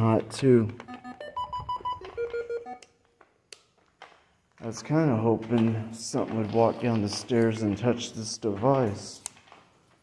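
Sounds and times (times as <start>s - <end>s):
electronic device beeping: 0.8s - 3.0s.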